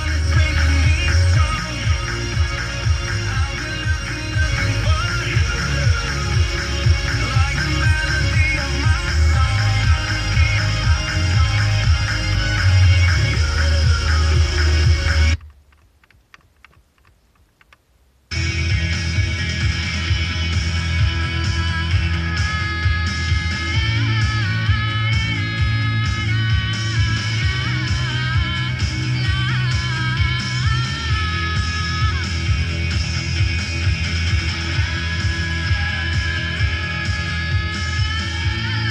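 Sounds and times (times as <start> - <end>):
radio music broadcast: 0.0 - 15.5, 18.3 - 38.9
faint ticks: 15.4 - 17.9.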